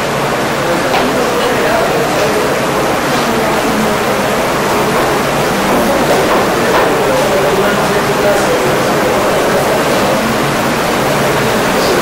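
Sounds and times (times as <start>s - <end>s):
low murmuring voices: 0.0s - 12.0s
room noise hiss and rumble: 0.0s - 12.0s.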